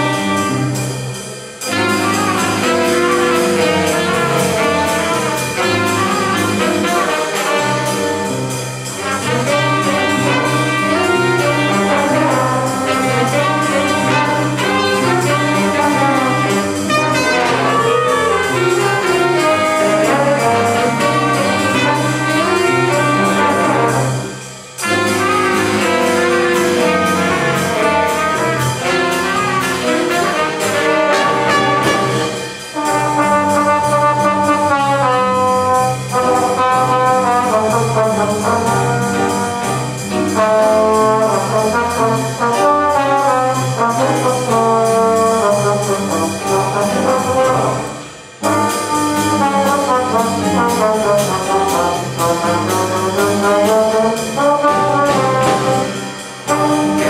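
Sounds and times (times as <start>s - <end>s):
drums: 0.0s - 57.0s
piano: 0.0s - 57.0s
saxophones: 0.0s - 57.0s
trombones: 0.0s - 57.0s
trumpets: 0.0s - 57.0s
walking upright bass: 1.6s - 57.0s.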